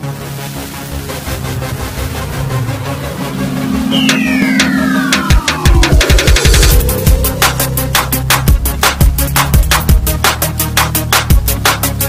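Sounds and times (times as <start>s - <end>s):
high synth tone sweeping downward: 1.7s - 8.8s
electronic music with steady beat: 2.3s - 12.0s.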